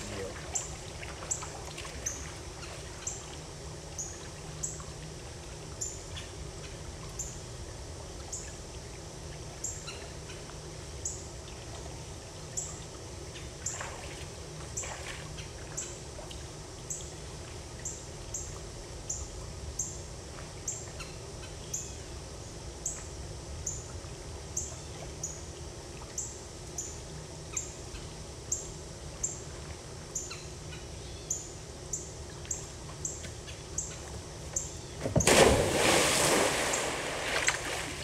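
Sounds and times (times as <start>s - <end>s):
low hum: 0.0s - 38.0s.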